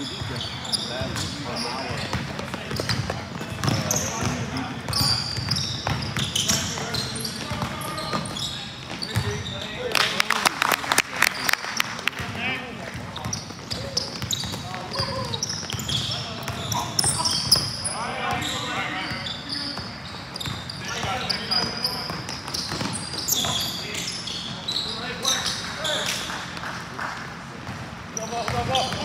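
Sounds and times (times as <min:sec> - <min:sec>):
sneakers squeaking: 0:00.0 - 0:10.0, 0:11.2 - 0:29.0
players calling out in hall: 0:03.7 - 0:10.2, 0:11.1 - 0:27.2.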